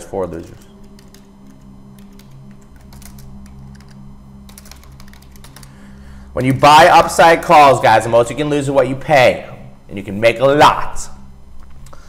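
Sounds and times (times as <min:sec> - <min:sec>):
low steady background hum: 0:00.0 - 0:12.0
computer keyboard typing: 0:00.4 - 0:05.8.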